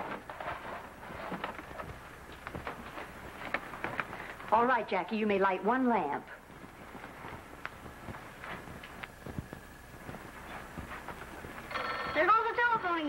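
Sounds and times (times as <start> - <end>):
woman speaking: 4.5 - 6.4, 12.1 - 13.0
telephone bell ringing: 11.7 - 13.0.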